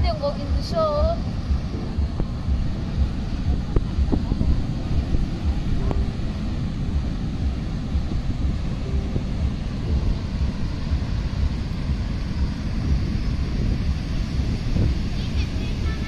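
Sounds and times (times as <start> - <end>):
surf breaking on beach: 0.0 - 16.0
wind buffeting microphone: 0.0 - 16.0.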